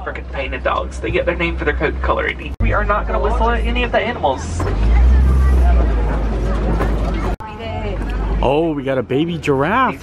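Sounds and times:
faint voices: 0.0 - 10.0
truck engine rumbling: 0.0 - 10.0.

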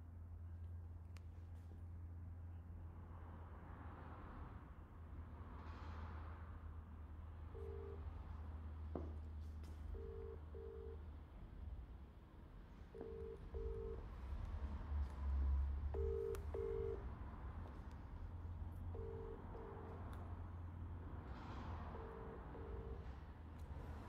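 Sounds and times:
telephone ringing tone: 7.6 - 8.0, 10.0 - 11.0, 13.0 - 14.0, 16.0 - 17.0, 19.0 - 20.0, 22.0 - 23.1
steady low hum: 15.7 - 24.0.

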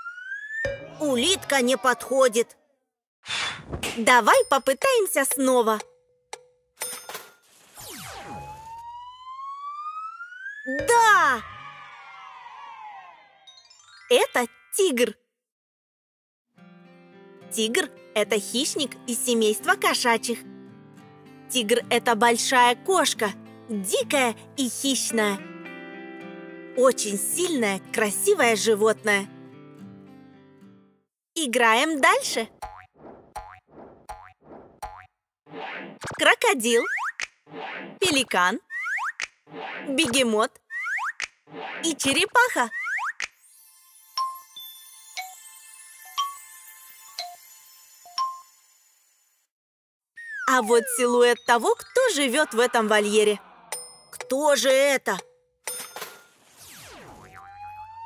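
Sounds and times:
cartoon springy boings: 0.0 - 2.1, 10.1 - 13.1, 32.6 - 36.2, 36.8 - 38.0, 38.7 - 41.9, 42.6 - 43.3, 50.2 - 54.4, 56.5 - 58.0
rising whistle-like tone: 8.0 - 13.6.

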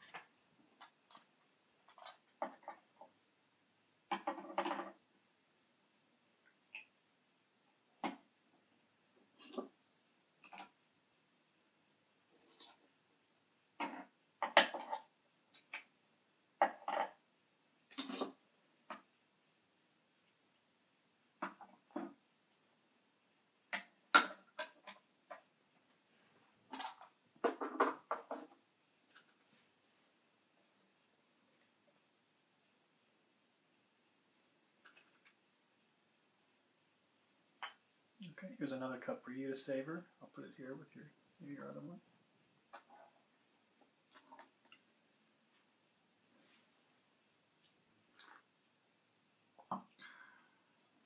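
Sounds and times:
teaware clinking and knocking: 23.7 - 25.4, 26.7 - 28.4.

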